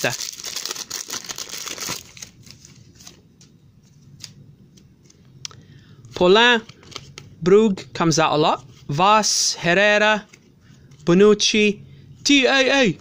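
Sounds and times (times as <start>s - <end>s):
foil packet tearing and crinkling: 0.0s - 3.2s
cards rustling and clicking: 0.0s - 5.2s, 6.6s - 7.4s.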